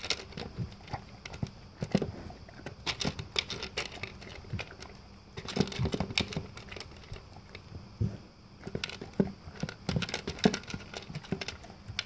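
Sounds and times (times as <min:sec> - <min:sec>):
dog crunching dry kibble: 0:00.0 - 0:07.7, 0:08.6 - 0:12.0.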